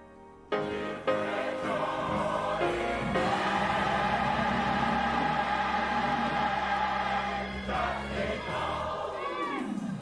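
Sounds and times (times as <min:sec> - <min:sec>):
choir singing a held chord: 0:00.5 - 0:09.8.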